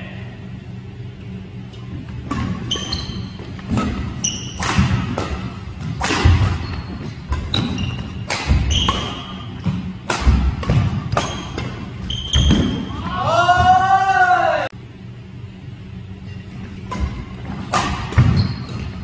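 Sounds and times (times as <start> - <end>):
rackets striking shuttlecock: 1.7 - 12.9, 16.8 - 19.0
sneakers squeaking on floor: 1.8 - 13.8, 16.2 - 19.0.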